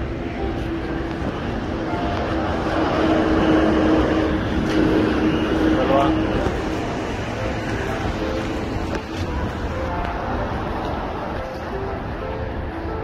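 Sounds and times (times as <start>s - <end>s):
vehicle passing close by: 0.0s - 11.4s.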